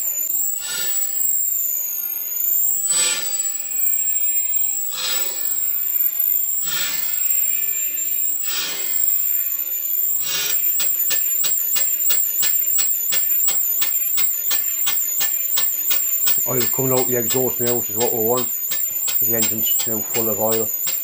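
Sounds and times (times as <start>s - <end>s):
steam engine exhaust beats: 10.2s - 21.0s
steam engine hissing: 10.2s - 21.0s.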